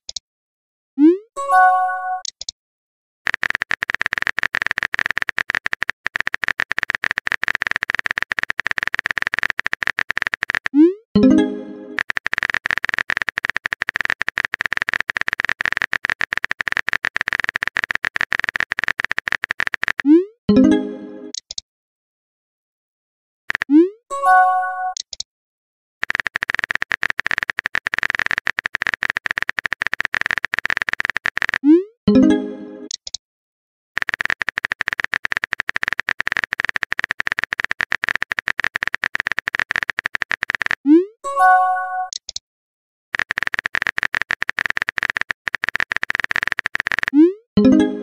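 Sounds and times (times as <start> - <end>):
typing clicks: 2.2 - 2.5, 3.3 - 20.3, 21.3 - 21.6, 23.5 - 23.9, 24.9 - 25.2, 26.0 - 31.9, 32.8 - 33.2, 34.0 - 41.1, 42.0 - 42.4, 43.2 - 47.8.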